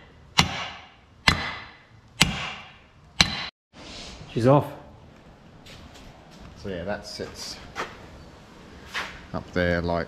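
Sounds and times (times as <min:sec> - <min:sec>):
hammer striking steel punch: 0:00.3 - 0:03.5.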